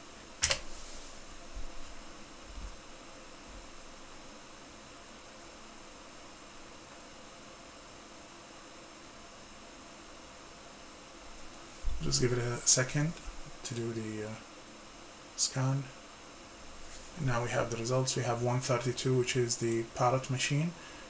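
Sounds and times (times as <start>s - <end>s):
fan-like hum: 0.0s - 21.0s
room tone hiss: 0.0s - 21.0s
keyboard key press: 0.4s - 0.6s.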